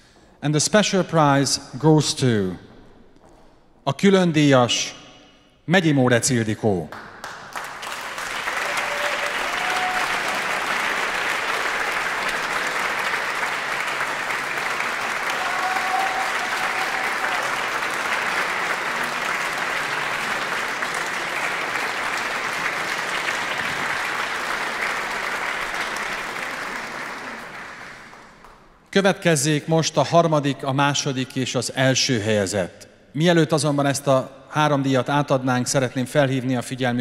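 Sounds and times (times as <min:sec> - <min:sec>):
audience applauding: 0:06.9 - 0:28.9.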